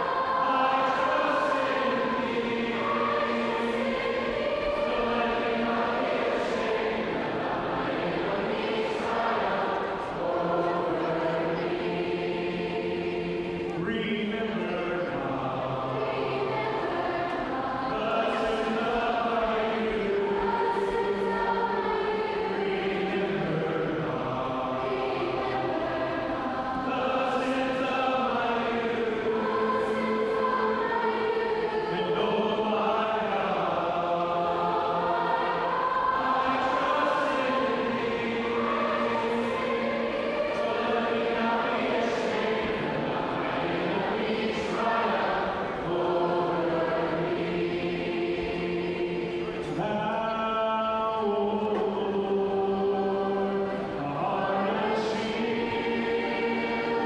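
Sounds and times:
crowd singing praise song: 0.0 - 57.0.

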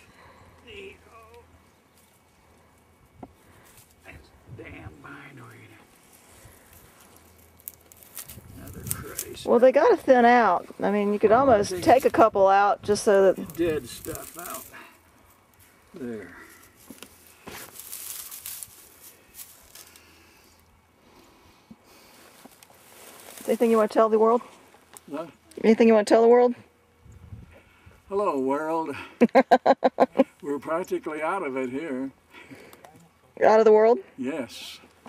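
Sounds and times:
low steady hum: 0.0 - 35.0
camera rustling against clothing: 16.6 - 20.0, 22.0 - 25.0.

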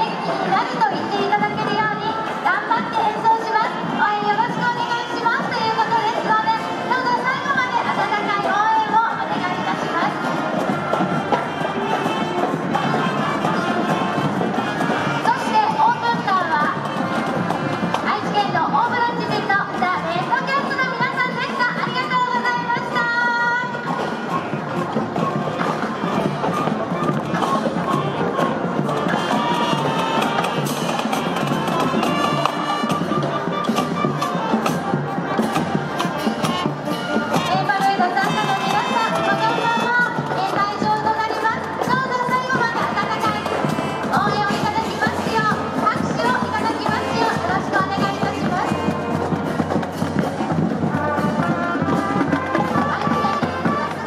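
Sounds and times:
brass instruments holding notes: 0.0 - 54.0
marching drum strokes: 0.0 - 54.0
woodwinds playing march tune: 0.0 - 54.0.

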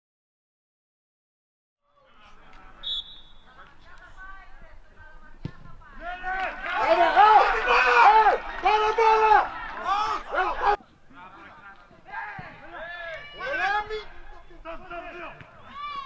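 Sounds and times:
thud: 5.4 - 5.8
men shouting and calling: 6.0 - 16.0.

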